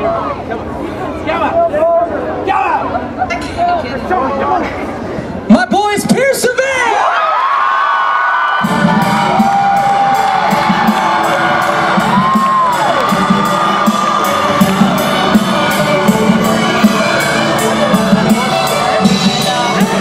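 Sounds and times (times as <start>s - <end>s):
crowd cheering and screaming: 6.8s - 20.0s
loud music with steady beat: 8.6s - 20.0s.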